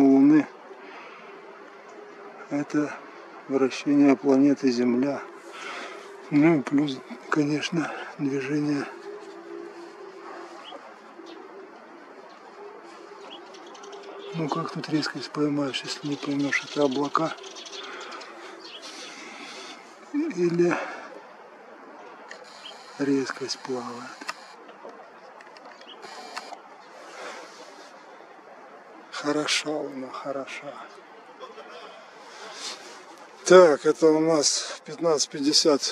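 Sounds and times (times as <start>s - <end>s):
background hiss: 0.0s - 35.9s
camera clicks and ticks: 24.2s - 24.8s, 25.4s - 26.6s.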